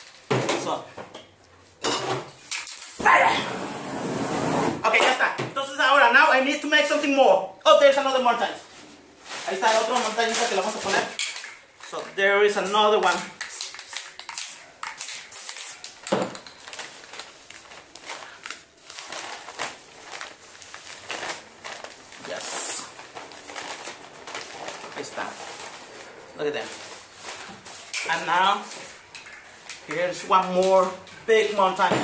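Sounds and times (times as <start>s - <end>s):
newspaper crinkling and rustling: 9.2s - 11.1s, 15.8s - 31.6s.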